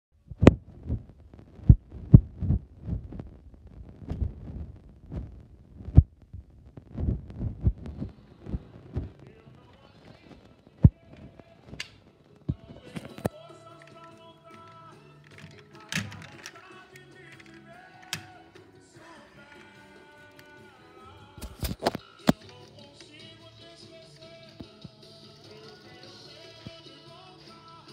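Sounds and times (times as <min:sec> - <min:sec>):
faint music with melody: 0:07.6 - 0:27.9.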